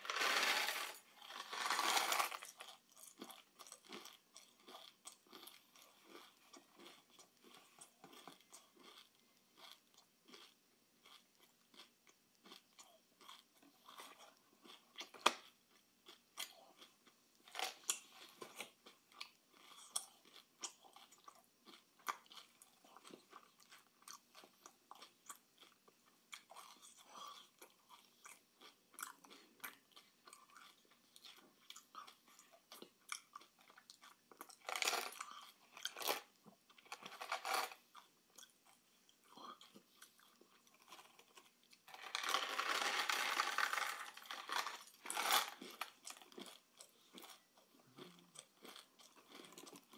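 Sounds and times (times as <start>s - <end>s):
person crunching sweets: 0.0s - 49.9s.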